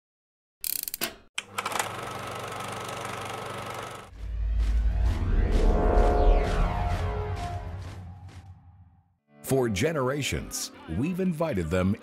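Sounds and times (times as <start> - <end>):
film projector clatter: 1.4 - 4.1
deep bass music swell: 4.1 - 9.1.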